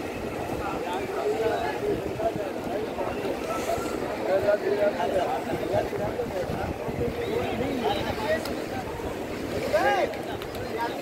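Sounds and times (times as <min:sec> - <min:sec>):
outdoor background rush: 0:00.0 - 0:11.0.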